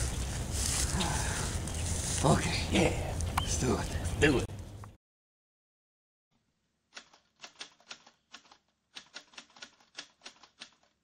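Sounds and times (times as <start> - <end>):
typewriter keys striking: 7.0 - 11.0.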